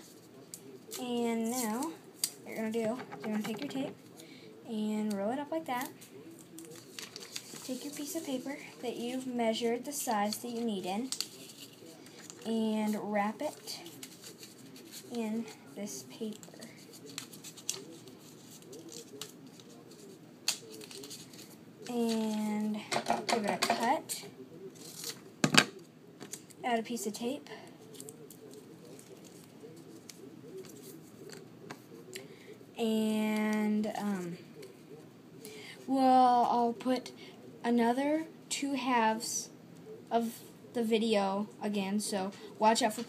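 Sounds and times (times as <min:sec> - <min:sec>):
paper rustling: 0:05.8 - 0:08.8, 0:10.2 - 0:12.5, 0:13.5 - 0:15.2, 0:16.2 - 0:22.2, 0:27.8 - 0:31.9.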